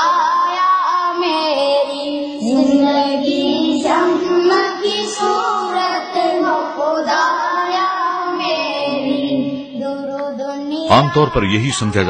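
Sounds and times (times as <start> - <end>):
high voices singing: 0.0 - 12.0.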